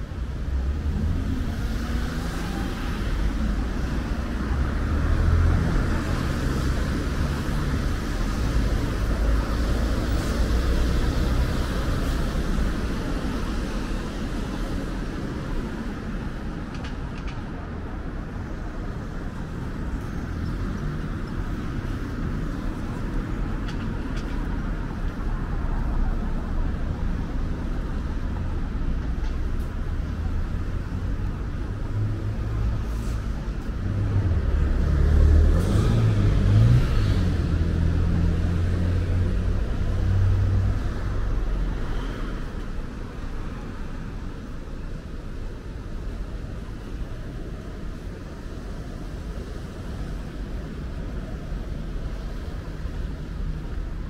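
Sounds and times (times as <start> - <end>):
cars driving past: 0.0 - 54.0.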